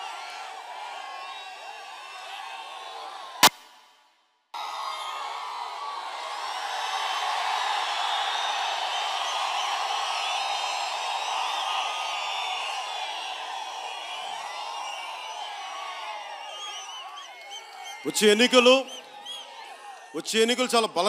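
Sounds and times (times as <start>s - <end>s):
crowd cheering and shouting: 0.0s - 3.5s, 4.6s - 21.0s.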